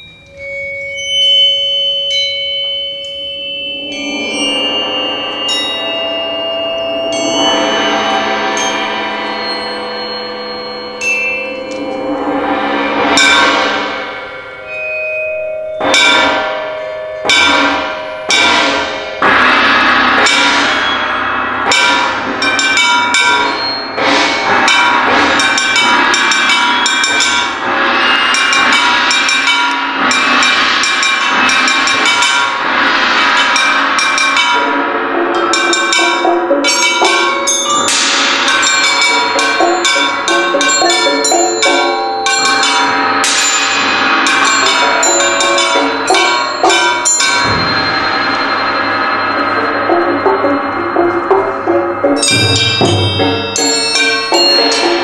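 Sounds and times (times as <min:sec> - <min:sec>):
percussion ensemble playing: 0:00.0 - 0:55.0.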